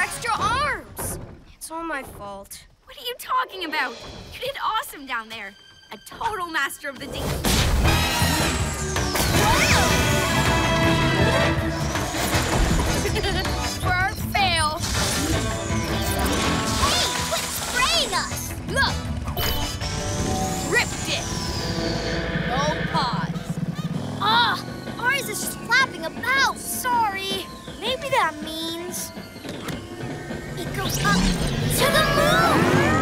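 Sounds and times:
cartoon background music: 0.0 - 33.0.

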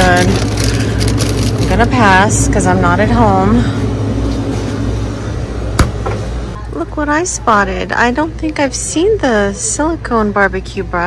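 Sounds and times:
freezer hum: 0.0 - 11.0.

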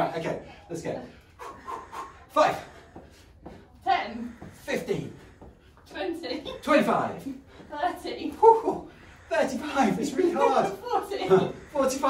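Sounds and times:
man and woman counting aloud: 0.0 - 12.0.

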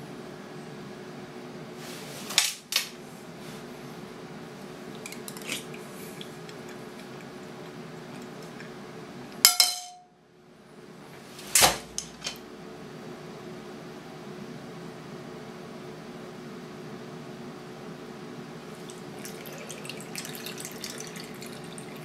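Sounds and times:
spoon clattering into bowl: 9.5 - 10.1
spoon clinking on bowl: 9.5 - 10.1.

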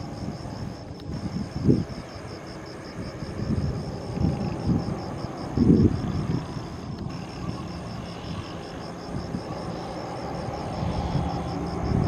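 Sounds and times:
distant jet engines rumbling: 0.0 - 12.0.

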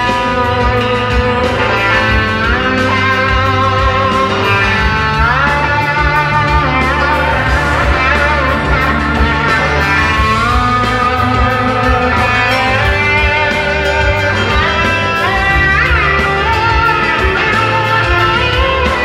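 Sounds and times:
bass: 0.0 - 19.0
drums: 0.0 - 19.0
electric guitar gliding notes: 0.0 - 19.0.

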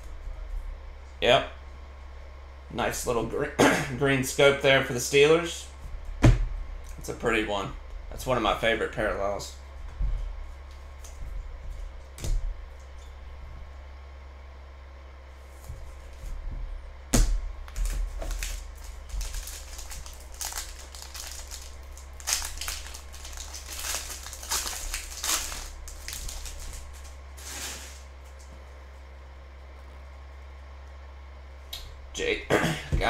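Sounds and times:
low steady hum: 0.0 - 33.0
foil wrapper crinkling: 17.7 - 28.3.

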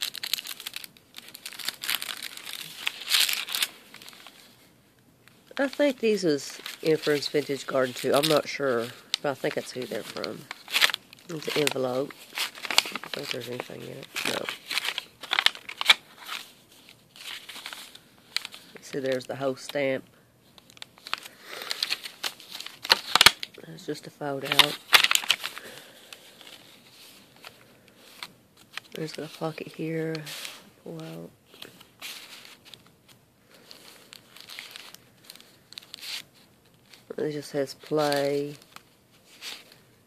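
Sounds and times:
paper pages rustling: 0.0 - 4.7, 5.4 - 39.9.

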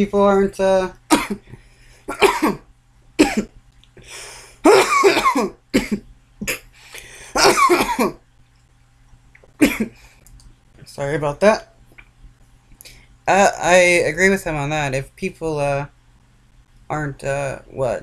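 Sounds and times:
man coughing: 1.1 - 3.5, 4.6 - 6.7, 7.3 - 8.2, 9.6 - 10.0.

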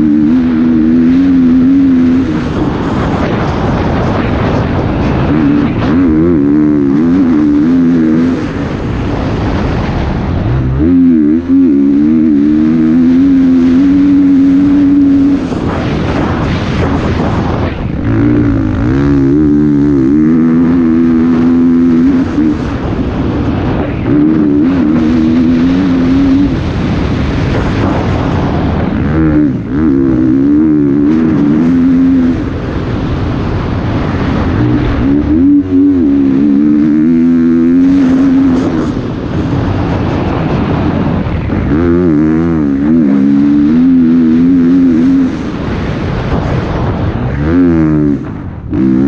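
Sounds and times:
dirt bike engine revving: 0.0 - 49.0
wind and tyre noise: 0.0 - 49.0.

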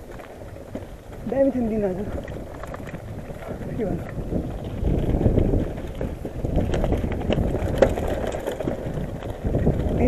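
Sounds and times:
bike rattling and clicking: 0.0 - 10.0
bike tyres crunching over stones: 0.0 - 10.0.

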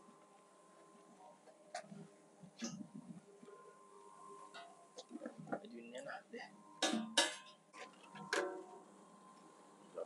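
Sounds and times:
metallic clanks of steel beam: 6.8 - 7.6.

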